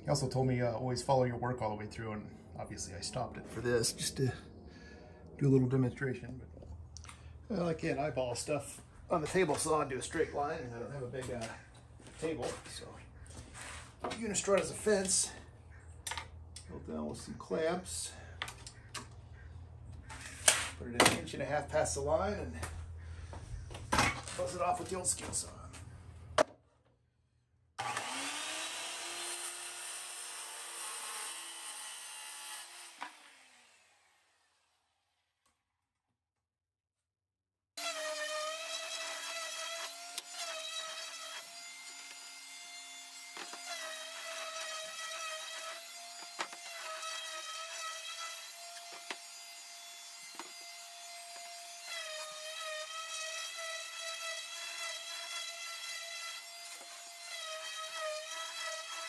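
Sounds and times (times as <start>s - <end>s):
circular saw cutting plywood: 27.8s - 35.2s, 37.8s - 59.0s.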